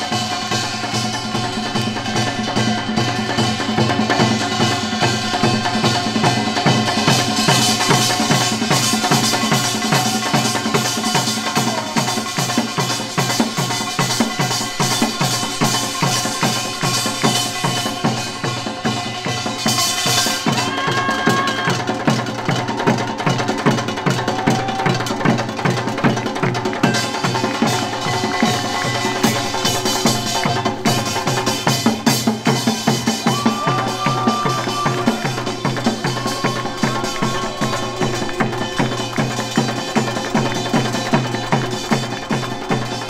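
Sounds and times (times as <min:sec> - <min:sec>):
drums beating a driving rhythm: 0:00.0 - 0:43.0
percussion ensemble playing: 0:00.0 - 0:43.0
small gongs ringing: 0:00.0 - 0:43.0.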